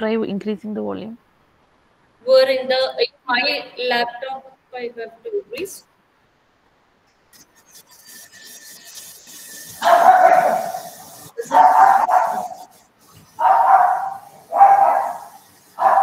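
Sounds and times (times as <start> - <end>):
dog barking: 9.8 - 12.8, 13.4 - 16.0.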